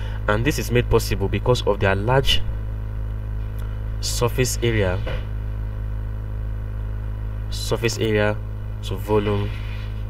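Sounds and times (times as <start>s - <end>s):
low electrical hum with buzz: 0.0s - 10.0s.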